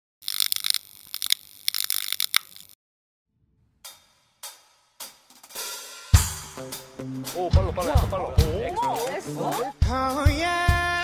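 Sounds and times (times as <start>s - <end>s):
high-pitched flickering clicks: 0.2s - 2.8s.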